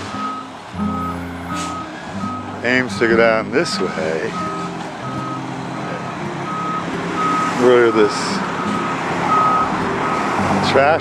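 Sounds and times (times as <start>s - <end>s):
truck engine running: 0.0s - 11.0s
truck reversing alarm beeps: 0.0s - 11.0s.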